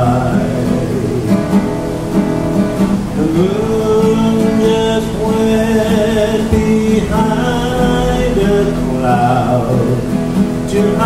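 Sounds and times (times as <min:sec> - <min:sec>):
acoustic guitar strumming chords: 0:00.0 - 0:11.0.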